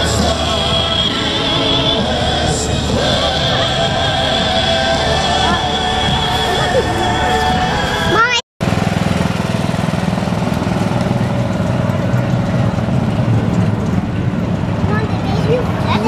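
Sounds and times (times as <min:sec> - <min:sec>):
music: 0:00.0 - 0:08.4
small engine humming: 0:00.0 - 0:16.0.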